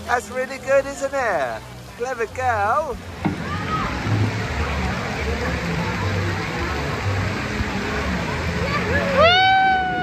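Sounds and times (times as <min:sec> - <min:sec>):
water rushing down a slide: 0:02.3 - 0:10.0.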